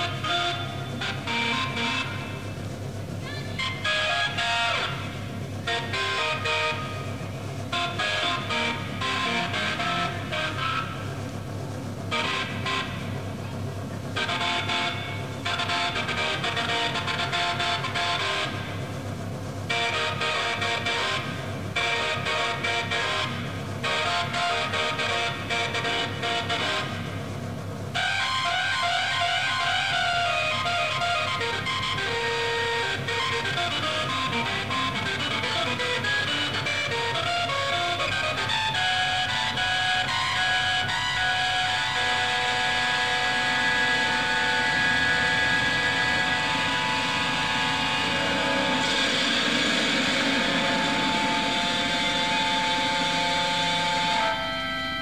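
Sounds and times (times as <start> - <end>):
distorted organ chords: 0.0 - 55.0
low drone: 0.0 - 55.0.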